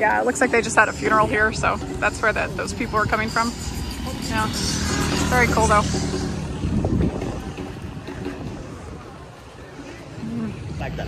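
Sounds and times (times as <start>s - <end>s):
street noise: 0.0s - 11.0s
wind rumbling on microphone: 0.0s - 11.0s.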